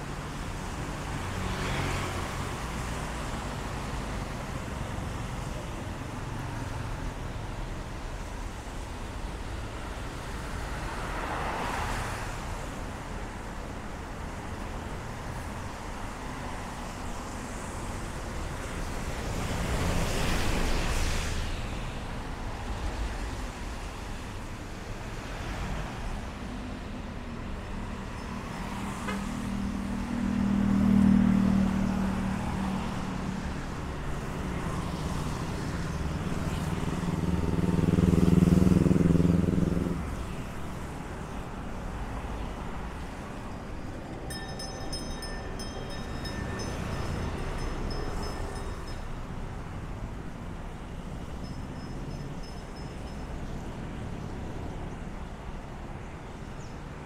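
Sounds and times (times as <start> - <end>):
motor vehicles passing: 25.2 - 55.8.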